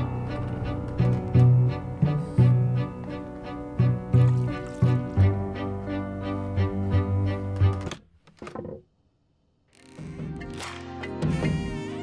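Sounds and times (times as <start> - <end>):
pulsing low string music: 0.0 - 7.9.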